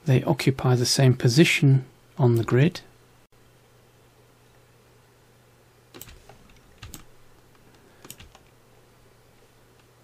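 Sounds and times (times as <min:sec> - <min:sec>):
low steady hum: 0:00.0 - 0:10.0
keyboard keys pressed: 0:06.0 - 0:07.1, 0:08.0 - 0:08.5.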